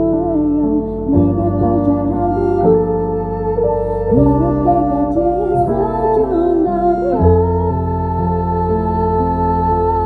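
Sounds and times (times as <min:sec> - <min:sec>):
woman singing ballad: 0:00.0 - 0:10.0.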